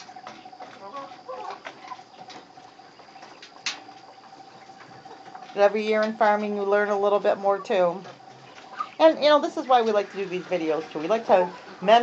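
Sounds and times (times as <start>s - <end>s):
chicks clucking and peeping: 0.0s - 12.0s.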